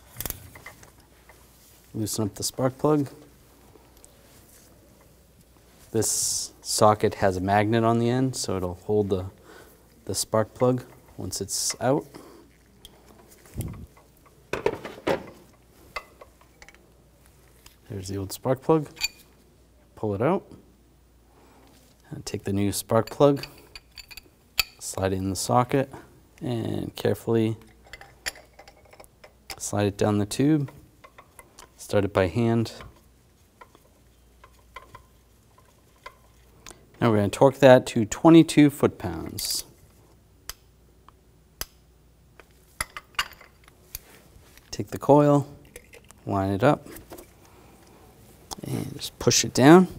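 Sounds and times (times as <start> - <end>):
metal clinks and knocks: 27.6 - 29.7, 32.7 - 36.5.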